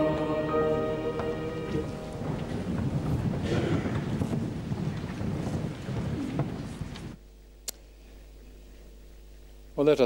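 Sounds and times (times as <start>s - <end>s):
congregation shuffling and rustling: 0.0s - 7.2s.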